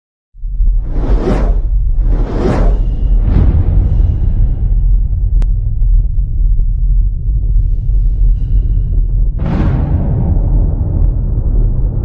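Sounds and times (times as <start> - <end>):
deep rumble: 0.4 - 12.0
loud whoosh: 0.5 - 5.8.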